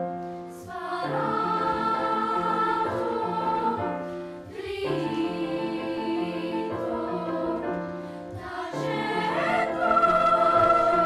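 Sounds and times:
children's choir singing: 0.5 - 11.0.

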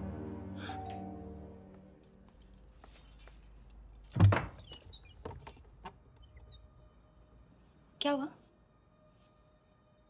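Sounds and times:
door clicks and rattles: 4.2 - 6.0.

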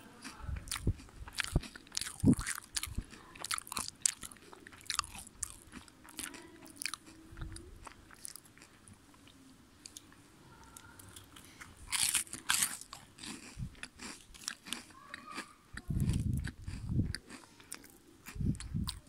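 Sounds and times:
wafer crunching being chewed: 0.0 - 10.1, 11.0 - 19.0.

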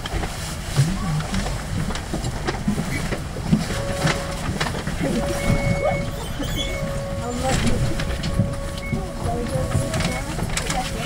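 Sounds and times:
diesel bus idling: 0.6 - 11.0
bus pulling away: 2.8 - 11.0.

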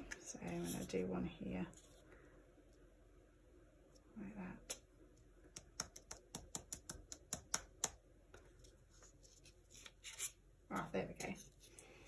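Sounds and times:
fingers tapping cardboard: 5.5 - 8.0.

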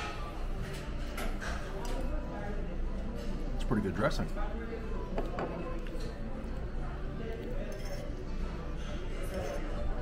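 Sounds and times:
indistinct chatter of diners: 0.0 - 10.0
quiet background music: 0.0 - 10.0
tableware clinking: 7.6 - 8.2, 8.9 - 10.0.

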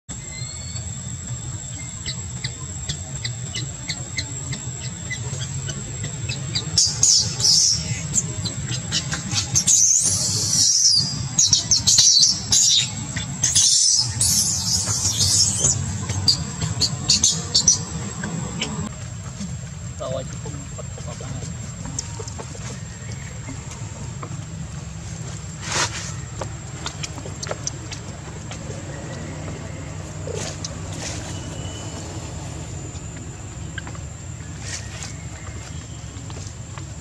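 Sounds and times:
low steady rumble: 0.1 - 37.0
baby monkey screaming: 4.8 - 18.0.

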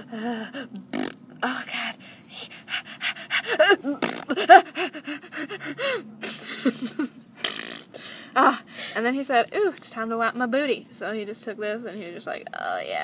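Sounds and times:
vocal squeaks: 0.9 - 1.2, 3.6 - 4.6, 7.4 - 8.1
person making straining noises: 3.3 - 6.4, 7.4 - 8.1.

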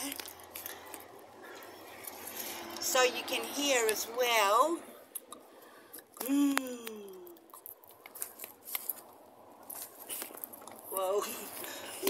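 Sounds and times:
person humming: 6.2 - 7.4.

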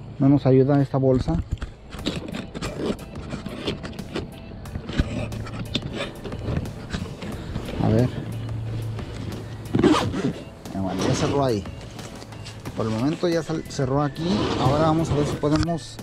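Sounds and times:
low steady hum: 0.0 - 16.0
tools clicking and fabric rustling: 1.3 - 10.4
backpack zipper closing: 1.8 - 13.2, 14.1 - 15.7.

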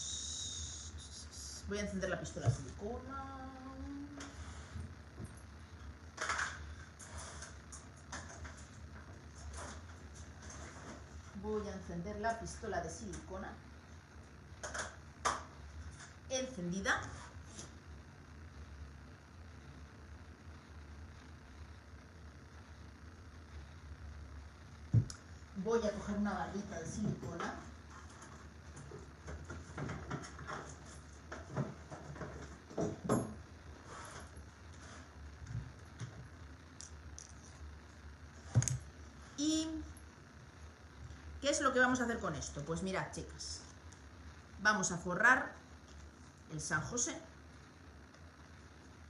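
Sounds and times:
faint steady low hum: 0.0 - 49.0.

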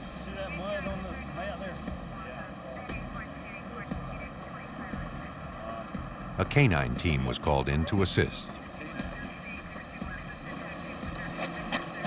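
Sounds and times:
steady outdoor background hum: 0.0 - 12.0
men talking indistinctly: 0.2 - 12.0.

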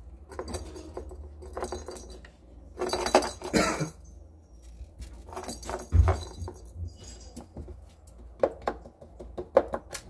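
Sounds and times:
jingle ball toy jingling: 0.2 - 4.1, 5.2 - 7.5.

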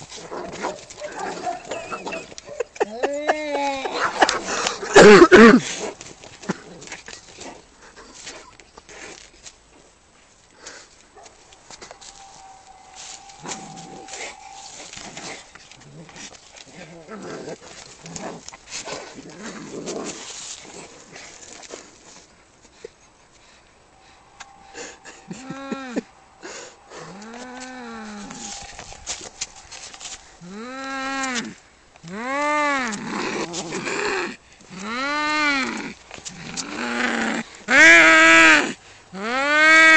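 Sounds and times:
cats scuffling on leaves: 10.8 - 22.3, 26.8 - 30.5
cat yowling: 11.6 - 15.5, 24.0 - 31.0
cats scuffling: 26.8 - 30.5.

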